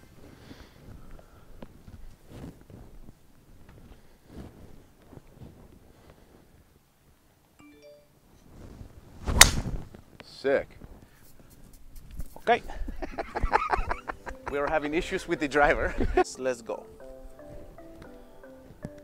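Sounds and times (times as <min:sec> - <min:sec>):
golf club whoosh: 0:09.2 - 0:09.8.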